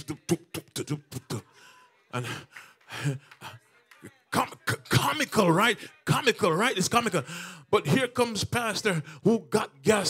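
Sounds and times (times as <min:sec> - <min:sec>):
man speaking into a microphone: 0:04.4 - 0:10.0.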